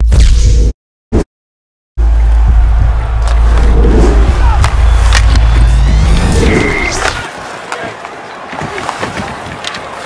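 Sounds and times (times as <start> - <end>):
arena background noise: 2.4 - 10.0
skates carving ice: 5.0 - 10.0.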